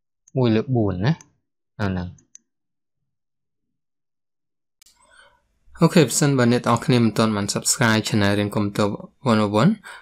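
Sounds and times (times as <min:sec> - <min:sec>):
person speaking: 0:05.7 - 0:10.0.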